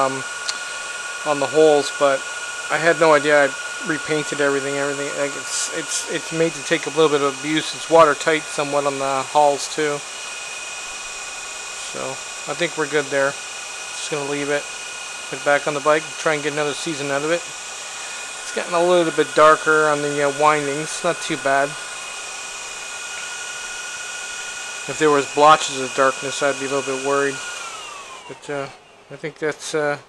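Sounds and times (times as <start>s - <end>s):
small electric motor whirring: 0.0s - 30.0s.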